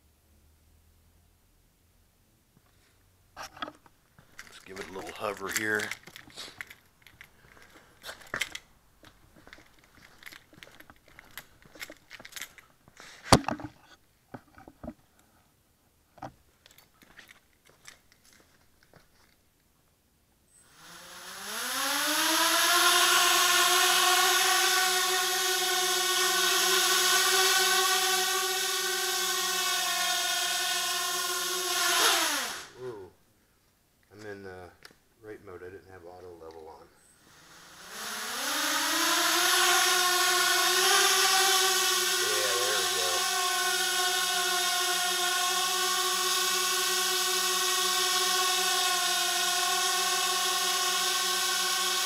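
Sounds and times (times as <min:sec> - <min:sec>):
quadcopter motors whining: 0:04.4 - 0:06.7, 0:20.5 - 0:33.0, 0:37.0 - 0:52.0.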